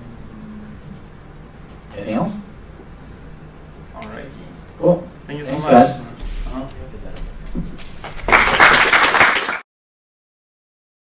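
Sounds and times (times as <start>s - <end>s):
audience applauding: 7.8s - 9.6s.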